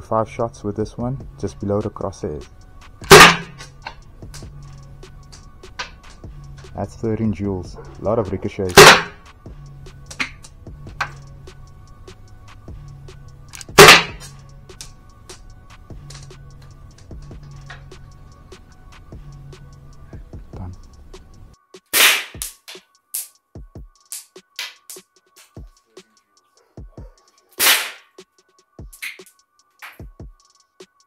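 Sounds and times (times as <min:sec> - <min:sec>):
background music: 0:00.0 - 0:31.0
electronic hip-hop beat: 0:01.1 - 0:31.0
sharp loud pistol shot: 0:03.1 - 0:03.6, 0:08.8 - 0:09.2, 0:13.8 - 0:14.2, 0:22.0 - 0:22.5, 0:27.6 - 0:28.0
sharp whip-crack hit: 0:03.1 - 0:03.6, 0:13.8 - 0:14.3, 0:22.0 - 0:23.3, 0:27.6 - 0:28.1.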